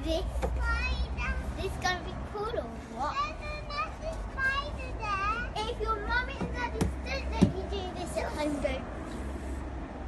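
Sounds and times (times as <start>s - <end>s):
sharp knocks: 6.3s - 7.6s.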